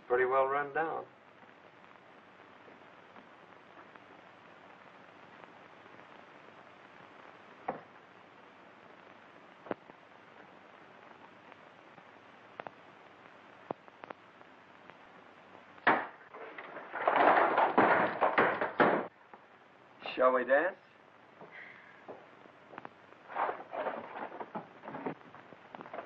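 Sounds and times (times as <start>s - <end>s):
film soundtrack hiss: 0.0s - 26.0s
boxes and goods clattering down: 15.8s - 19.1s, 23.3s - 25.2s.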